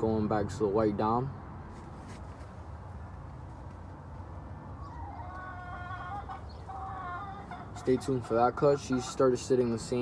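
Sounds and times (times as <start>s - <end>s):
chicken clucking call: 4.8s - 8.3s.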